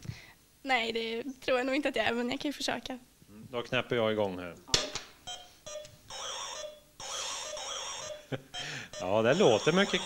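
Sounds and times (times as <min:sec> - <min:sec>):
high warbling electronic alarm: 0:05.7 - 0:10.0.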